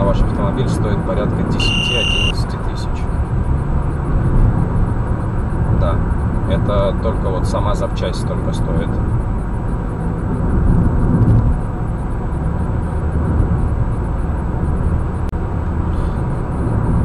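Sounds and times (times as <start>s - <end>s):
car road and engine noise: 0.0s - 17.0s.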